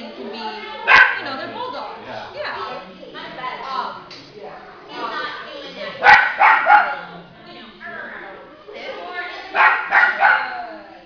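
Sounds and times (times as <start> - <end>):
people talking: 0.0 - 11.0
puppy barking: 0.8 - 1.3, 6.0 - 7.1, 9.6 - 10.6.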